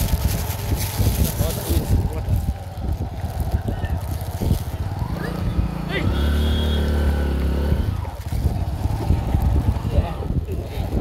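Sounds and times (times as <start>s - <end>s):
vehicle engine running: 0.0s - 10.5s
wind rumbling on microphone: 0.0s - 11.0s.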